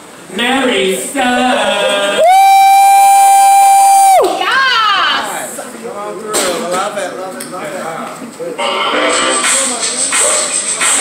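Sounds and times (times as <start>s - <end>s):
person whooping: 2.2s - 4.4s.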